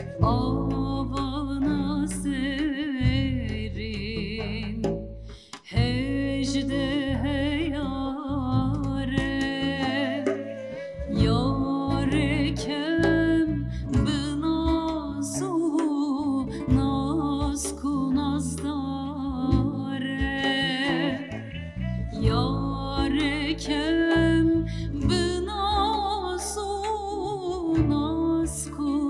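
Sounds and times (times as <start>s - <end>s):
violin: 0.0s - 5.0s, 5.6s - 29.0s
acoustic guitar: 0.0s - 29.0s
long-necked lute: 0.0s - 29.0s
woman singing: 0.0s - 29.0s.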